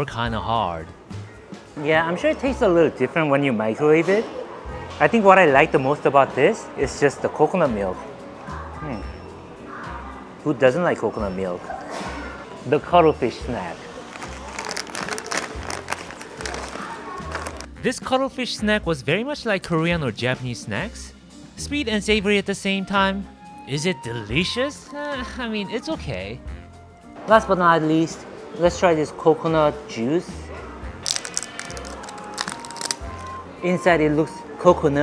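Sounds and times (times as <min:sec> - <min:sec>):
background music: 0:00.0 - 0:35.0
plastic snack bag crinkling and tearing: 0:14.0 - 0:17.7, 0:31.0 - 0:33.4
plastic bottle cap twisting open: 0:14.1 - 0:17.7, 0:31.0 - 0:33.4.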